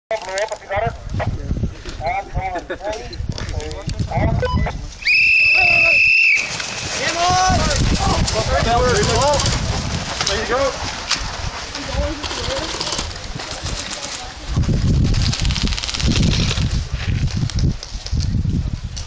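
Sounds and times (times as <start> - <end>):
whistle blast: 5.0 - 6.5.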